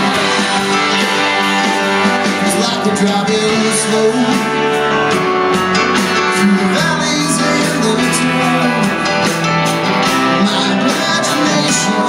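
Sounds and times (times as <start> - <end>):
drums: 0.0 - 12.0
electric guitars strumming: 0.0 - 12.0
keyboard: 0.0 - 12.0.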